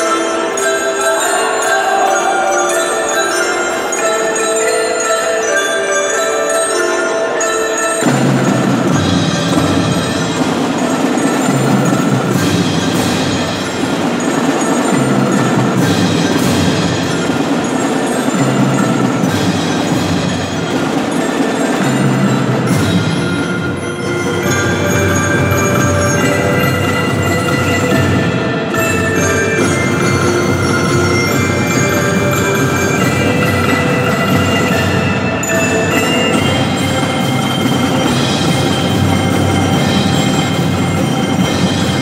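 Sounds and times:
bell-like chimes: 0.0s - 42.0s
percussion ensemble playing: 0.0s - 42.0s.

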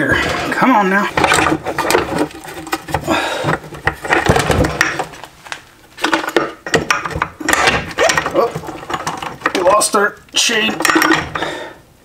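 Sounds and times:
metal knocks clinks and scrapes: 6.0s - 9.8s, 10.6s - 11.5s.

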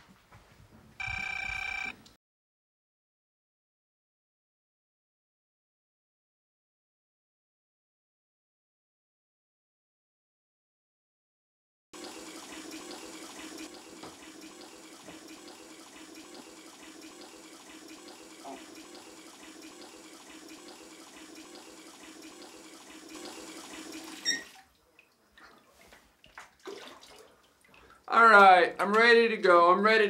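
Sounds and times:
tap running into bathtub: 12.0s - 24.7s.

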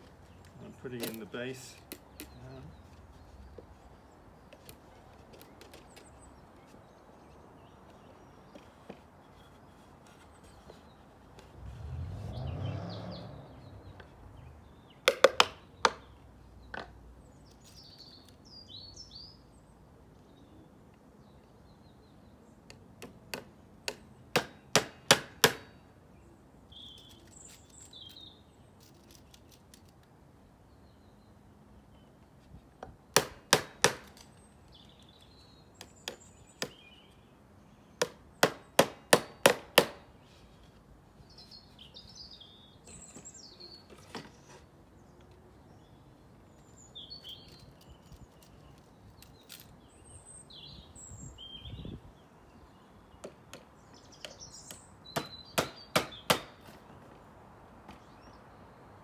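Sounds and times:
hammer striking wood: 23.3s - 25.7s, 33.2s - 34.2s, 38.0s - 40.0s, 55.2s - 56.8s.

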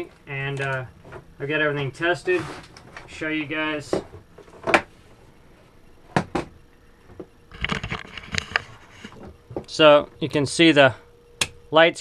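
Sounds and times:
sharp knocks and clunks: 6.1s - 6.5s.

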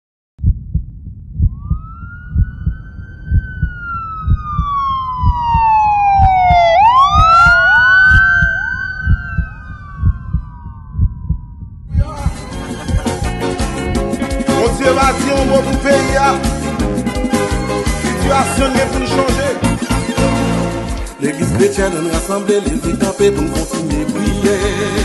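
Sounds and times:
siren wailing: 1.4s - 12.0s
deep double thump: 21.4s - 22.0s.

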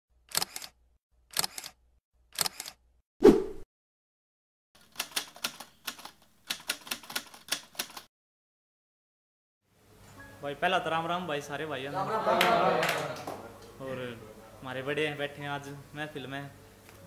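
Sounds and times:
typing-like clicks: 4.8s - 8.1s.

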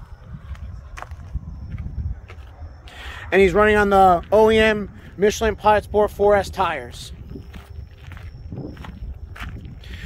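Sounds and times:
footsteps on gritty pavement: 0.0s - 2.9s, 3.5s - 10.0s
low steady rumble: 0.0s - 9.8s.

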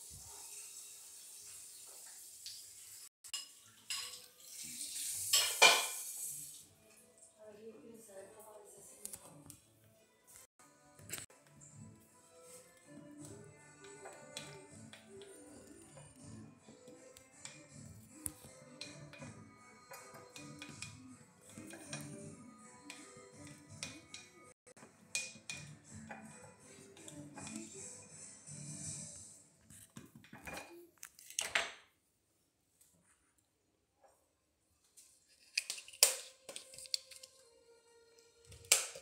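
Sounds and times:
faint background music: 3.4s - 31.7s, 33.6s - 39.0s.

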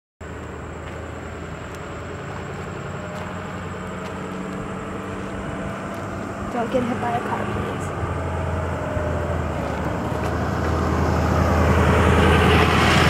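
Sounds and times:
vehicle engine running: 0.2s - 13.0s.

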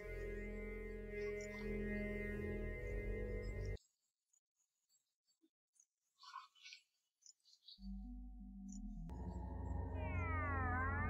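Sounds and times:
low synth drone: 0.0s - 3.8s, 7.9s - 11.0s
gliding synth tones: 9.1s - 11.0s.

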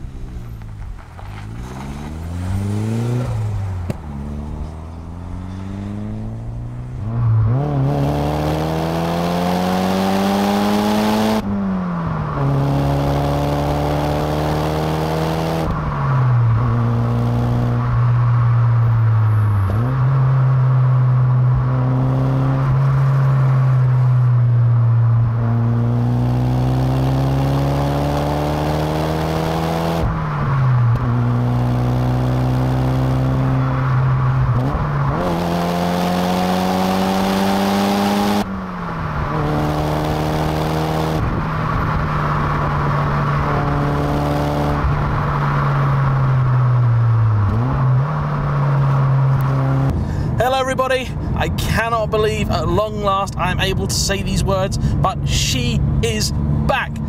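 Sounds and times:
car engine accelerating: 0.0s - 57.0s
road noise: 0.0s - 57.0s
wind noise: 38.7s - 50.3s.

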